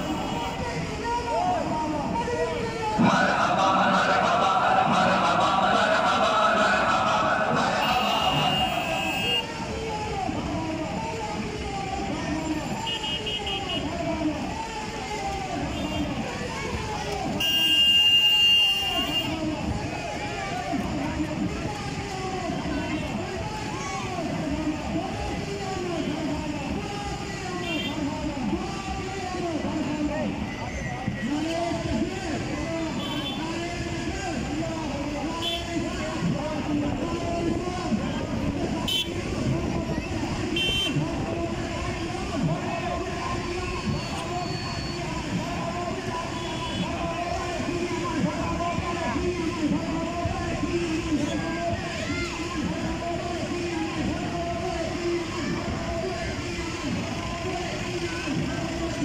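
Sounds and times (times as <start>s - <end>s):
voices of people in procession: 0.0s - 59.0s.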